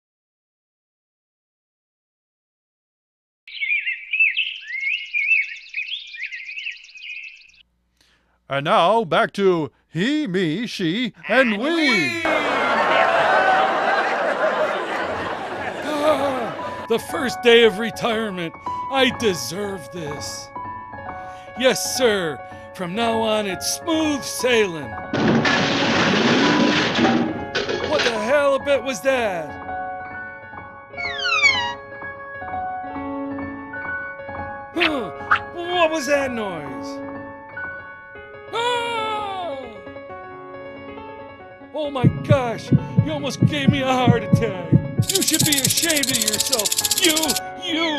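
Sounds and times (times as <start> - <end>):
music: 11.3 - 47.9
loud crash clatter: 25.1 - 28.1
high-pitched chirping and warbling: 31.0 - 31.8, 45.0 - 47.4
fast ticking trill: 45.0 - 47.4.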